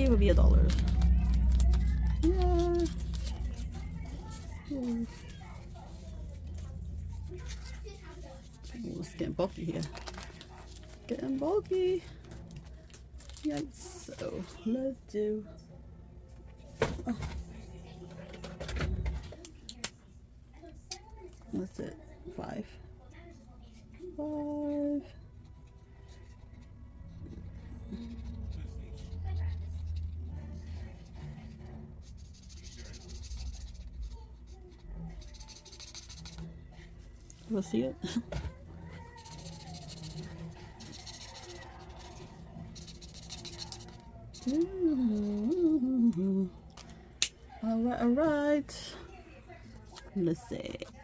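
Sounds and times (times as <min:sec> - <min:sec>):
marker scratching on paper: 0:01.2 - 0:09.6, 0:32.1 - 0:36.5, 0:38.9 - 0:44.6.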